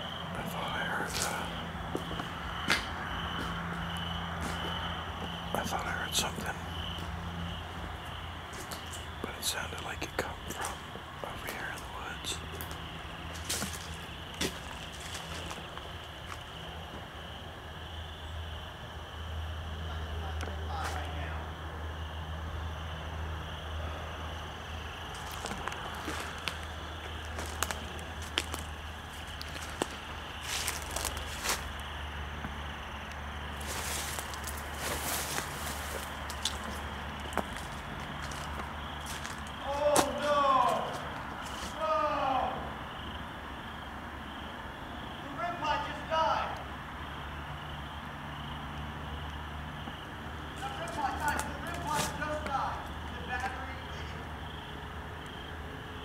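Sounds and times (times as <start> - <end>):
distant voice: 0.0 - 13.0, 19.6 - 22.4, 23.1 - 31.8, 38.2 - 43.1, 45.1 - 46.8, 50.5 - 54.7
steady low hum: 0.0 - 39.9
footsteps through dry brush: 0.8 - 5.4, 12.5 - 16.6, 25.1 - 32.0, 33.6 - 41.8, 50.6 - 52.5
twigs snapping: 25.1 - 31.9, 33.6 - 41.8, 50.6 - 52.6.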